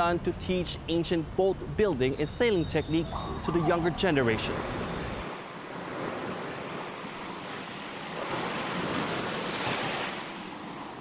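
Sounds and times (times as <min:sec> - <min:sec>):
wind on microphone: 0:02.4 - 0:05.4
water rushing and splashing: 0:02.9 - 0:11.0.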